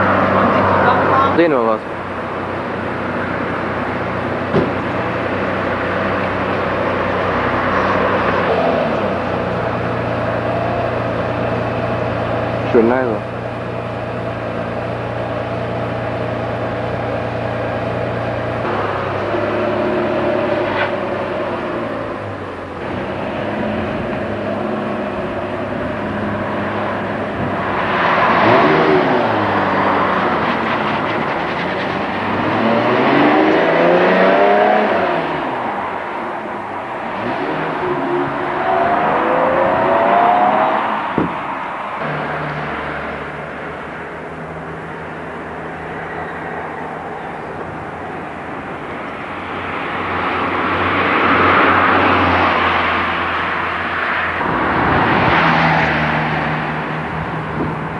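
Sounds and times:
car engine idling and revving: 0.0s - 57.9s.

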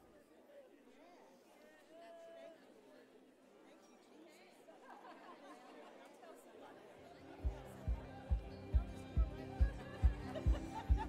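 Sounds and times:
murmur of people chatting: 0.0s - 11.0s
music with low thumping beat: 7.4s - 11.0s.

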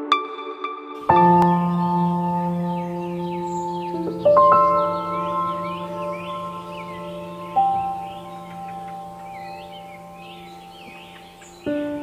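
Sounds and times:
ambient music with bell-like notes: 0.0s - 12.0s
birdsong chirping: 1.0s - 12.0s.

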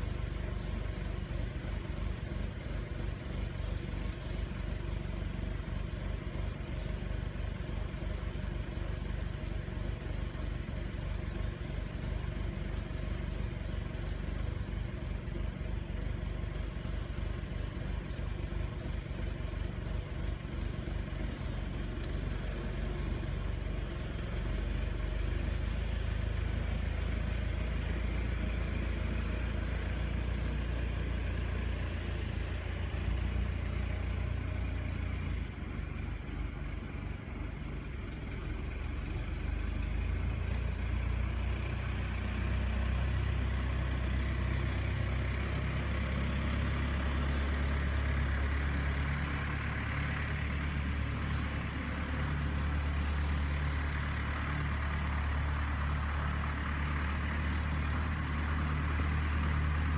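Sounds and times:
engine idling: 0.0s - 59.9s.

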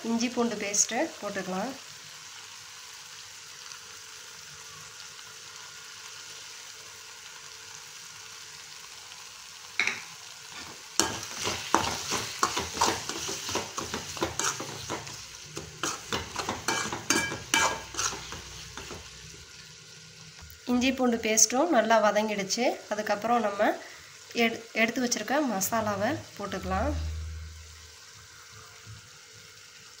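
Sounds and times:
food sizzling in oil: 0.0s - 30.0s
metal spatula scraping a pan: 10.5s - 19.1s.

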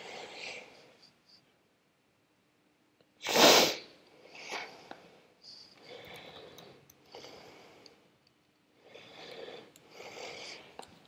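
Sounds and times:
quiet breathy sound: 0.0s - 2.2s, 3.0s - 11.0s
person sneezing: 3.2s - 3.9s.

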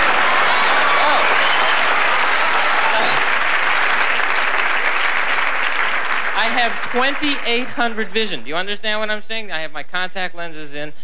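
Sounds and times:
audience applauding: 0.0s - 8.4s.

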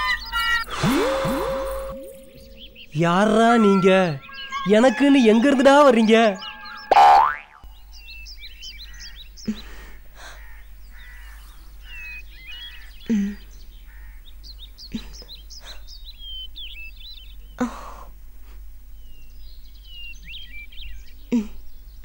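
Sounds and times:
birds chirping: 0.0s - 22.0s
rising sound effect: 0.7s - 7.6s.

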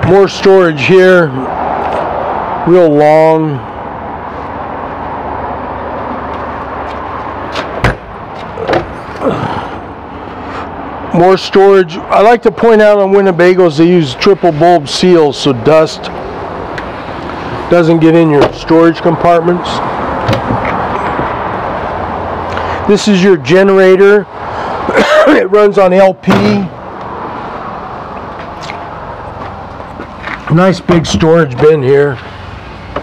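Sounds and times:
man speaking: 0.0s - 1.5s, 2.7s - 3.6s, 11.1s - 16.1s, 17.7s - 19.9s, 22.8s - 24.3s, 25.0s - 26.8s, 30.5s - 32.3s.

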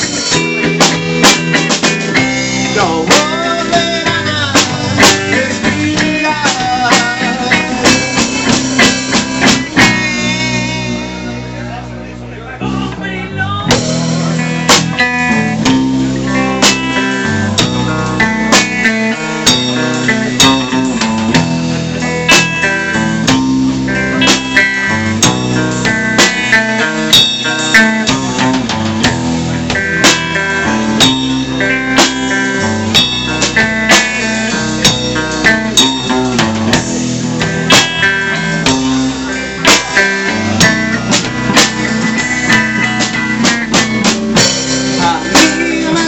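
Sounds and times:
bass guitar: 0.0s - 46.0s
drum kit: 0.0s - 46.0s
electric guitar: 0.0s - 46.0s.

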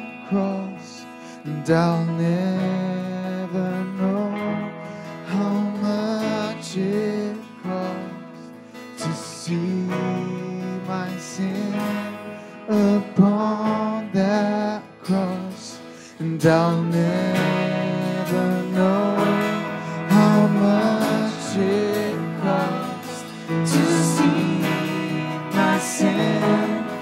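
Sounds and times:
electric guitar: 0.0s - 27.0s
keyboard: 0.0s - 27.0s
person singing: 0.0s - 27.0s
strummed acoustic guitar: 0.0s - 27.0s.

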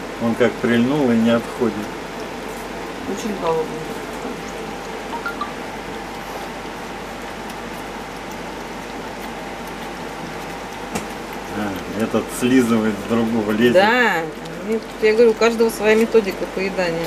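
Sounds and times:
hedgehogs lapping milk: 0.0s - 17.0s.

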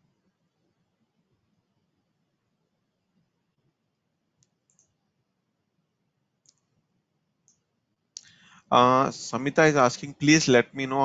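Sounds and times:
faint computer mouse clicks: 4.4s - 5.0s, 6.4s - 6.7s, 7.4s - 8.4s.

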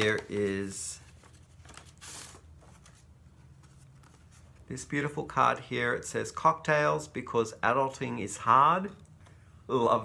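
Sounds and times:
paper rustling: 0.0s - 4.8s.

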